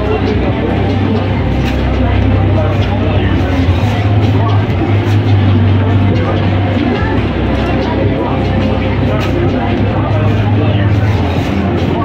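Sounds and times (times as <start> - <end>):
chatter of shoppers: 0.0 - 12.0
steady low rumble: 0.0 - 12.0.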